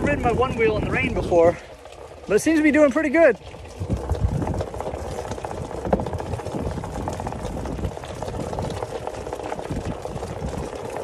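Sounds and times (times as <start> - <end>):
tyre noise on wet ground: 0.0 - 11.0.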